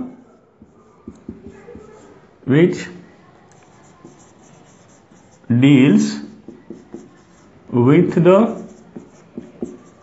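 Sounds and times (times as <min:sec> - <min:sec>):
marker writing on whiteboard: 0:00.0 - 0:10.0
man speaking: 0:02.4 - 0:03.1, 0:05.5 - 0:06.3, 0:07.7 - 0:08.7.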